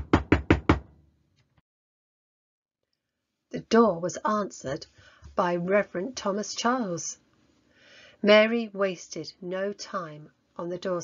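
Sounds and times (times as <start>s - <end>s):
rapid knocking on door: 0.0s - 0.9s.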